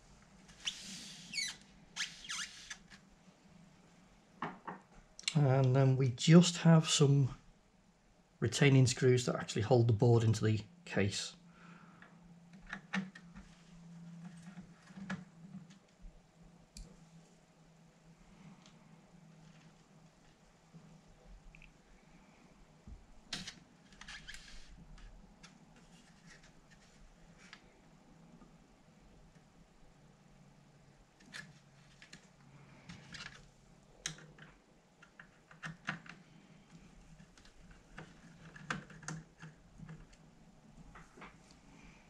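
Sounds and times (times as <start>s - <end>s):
faint steady room hum: 0.0s - 42.0s.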